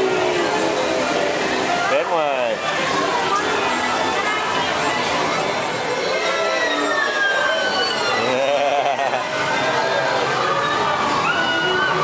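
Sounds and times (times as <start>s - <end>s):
carousel ride noise: 0.0s - 12.0s
crowd noise: 0.0s - 12.0s
thin high tone sliding downward: 6.0s - 9.1s.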